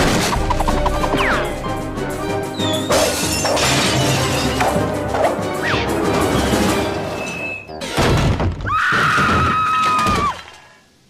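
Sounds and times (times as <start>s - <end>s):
crashing and shattering effects: 0.0s - 1.5s, 2.8s - 4.9s
cartoon background music: 0.0s - 8.4s.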